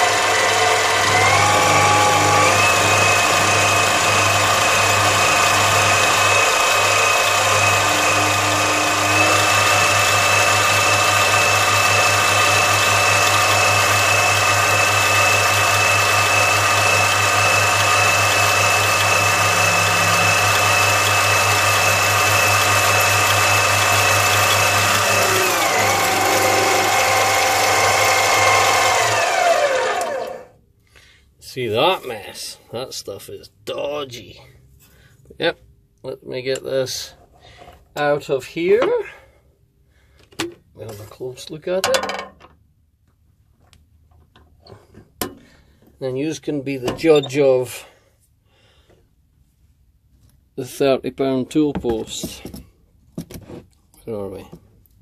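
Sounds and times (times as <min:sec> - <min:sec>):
lathe motor whine: 0:00.0 - 0:30.6.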